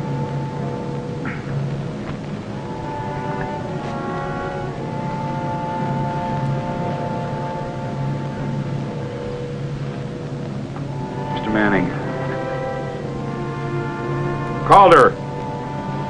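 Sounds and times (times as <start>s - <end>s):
higher tones cluster: 0.0s - 16.0s
suspenseful music over low drone: 0.0s - 16.0s.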